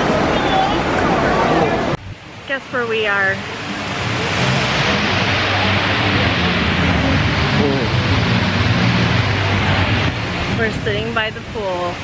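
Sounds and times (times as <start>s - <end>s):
waterfall rushing into pool: 0.0s - 12.0s.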